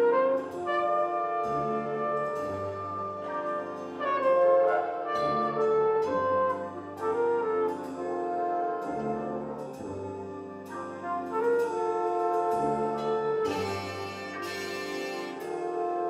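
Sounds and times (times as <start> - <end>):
jazz band playing sustained chords: 0.0 - 16.0.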